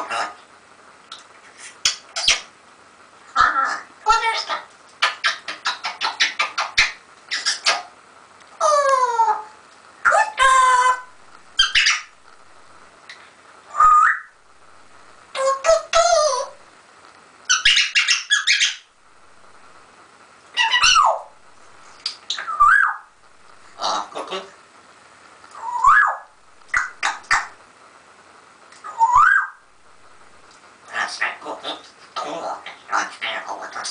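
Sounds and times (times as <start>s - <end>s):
parrot harsh calls: 0.0s - 0.4s, 3.3s - 8.0s, 8.6s - 12.2s, 13.7s - 14.4s, 17.5s - 18.9s, 20.5s - 21.3s, 22.3s - 23.1s, 23.8s - 24.5s, 25.6s - 27.6s, 28.8s - 29.7s, 30.9s - 33.9s
parrot whistled calls: 3.4s - 7.9s, 10.4s - 12.1s, 13.7s - 14.4s, 17.5s - 18.9s, 20.6s - 21.3s, 22.3s - 23.1s, 25.6s - 27.6s, 28.8s - 29.6s.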